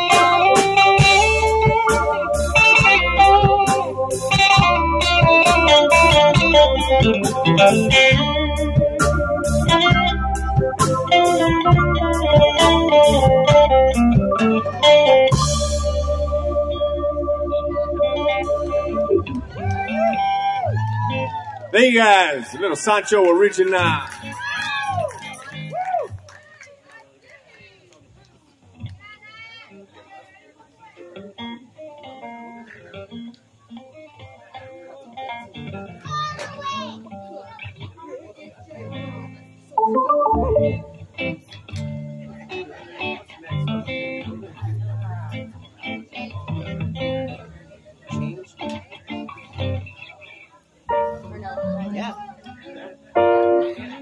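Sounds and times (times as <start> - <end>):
guitar picking notes: 0.0 - 20.3, 39.8 - 41.4, 50.9 - 52.3
voices talking: 21.8 - 24.2
band playing final chord: 39.8 - 41.2.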